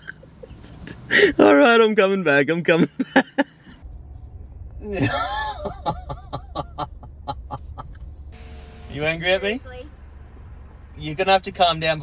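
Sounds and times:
man chuckling: 0:04.8 - 0:08.0.

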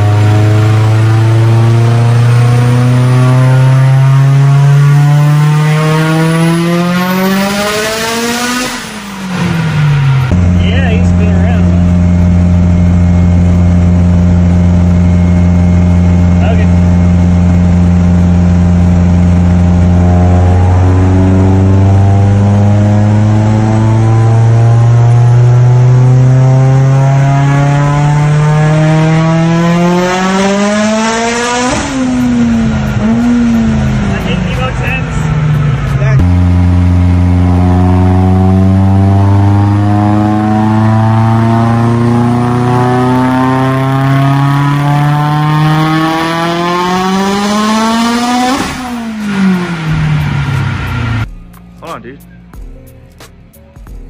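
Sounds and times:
car engine revving: 0:00.0 - 0:51.4
engine sputtering: 0:30.2 - 0:52.0.

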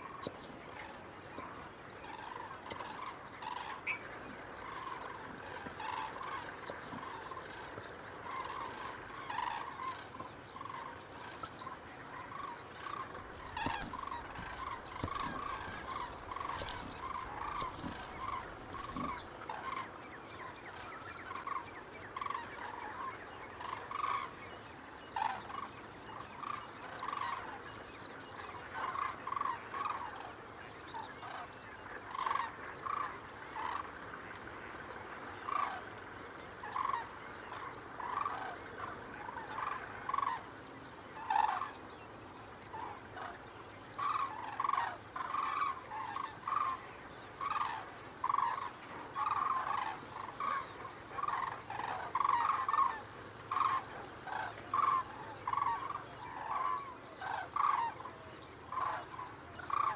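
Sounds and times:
fowl calling: 0:00.0 - 0:19.8, 0:25.2 - 0:27.7, 0:35.3 - 0:59.9.

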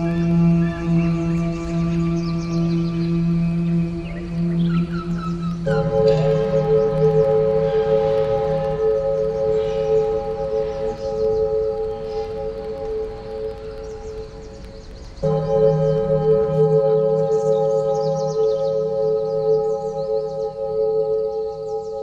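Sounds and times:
low drone: 0:00.0 - 0:22.0.

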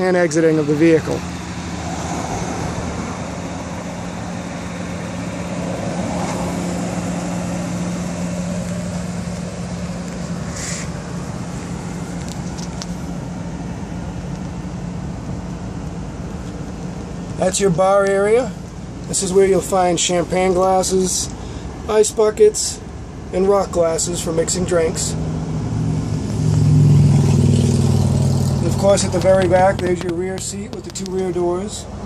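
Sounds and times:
traffic rumble: 0:00.0 - 0:32.0.

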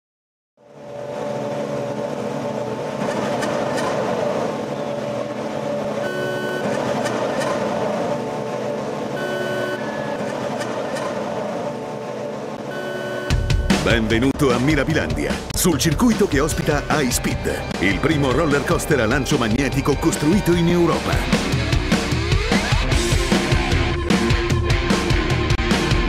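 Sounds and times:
dense droning hum: 0:00.6 - 0:15.6
short electronic beep: 0:06.0 - 0:06.8, 0:09.2 - 0:10.2, 0:12.7 - 0:13.9.

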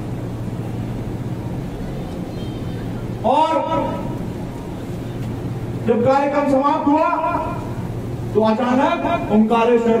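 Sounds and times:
low droning hum: 0:00.0 - 0:10.0.

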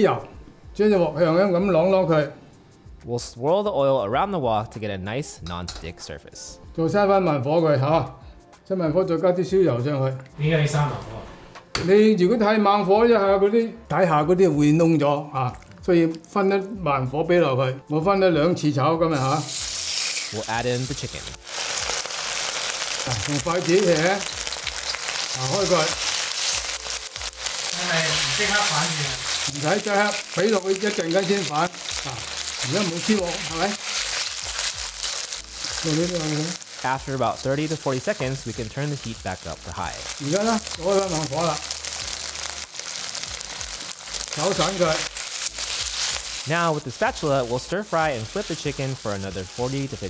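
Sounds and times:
chicken sizzling in hot oil: 0:19.1 - 0:50.0
man talking: 0:20.3 - 0:21.4, 0:23.0 - 0:24.2, 0:25.3 - 0:26.0, 0:27.7 - 0:33.8, 0:35.8 - 0:41.6, 0:44.4 - 0:45.1, 0:46.4 - 0:50.0.

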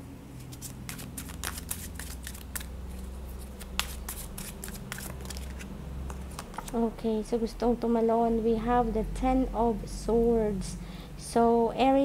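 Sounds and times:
cards being shuffled: 0:00.4 - 0:06.8.

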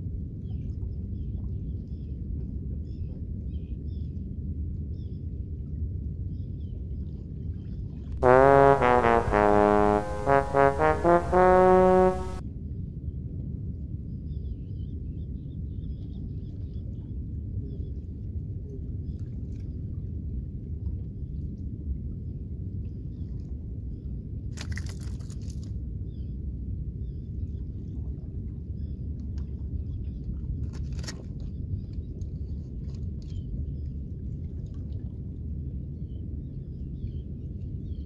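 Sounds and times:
brass music sting: 0:08.2 - 0:12.4.

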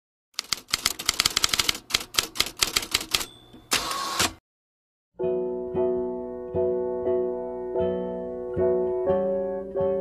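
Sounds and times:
typewriter keys clacking: 0:00.4 - 0:03.9
typewriter carriage rattling: 0:00.4 - 0:04.3
typewriter bell ding: 0:02.9 - 0:03.9.

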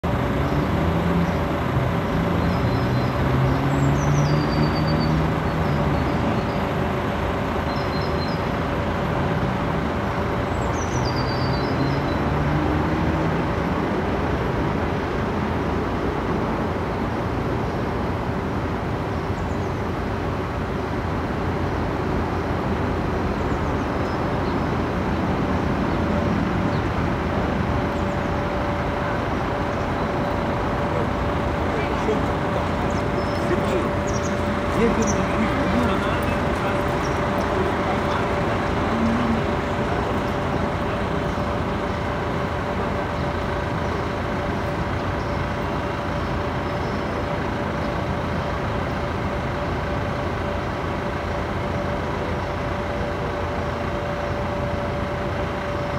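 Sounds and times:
engine passing: 0:00.0 - 0:07.7, 0:08.4 - 0:16.5, 0:24.9 - 0:50.8
distant road traffic: 0:00.0 - 0:55.9
small birds chirping: 0:00.2 - 0:08.6, 0:10.5 - 0:12.3, 0:29.6 - 0:48.0.

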